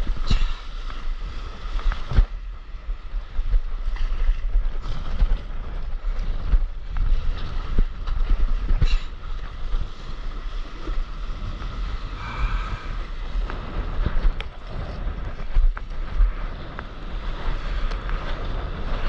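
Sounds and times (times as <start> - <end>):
wind buffeting the microphone: 0.0 - 19.0.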